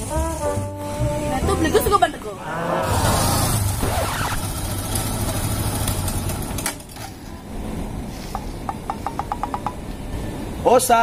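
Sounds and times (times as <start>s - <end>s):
motorcycle engine running: 2.8s - 6.9s.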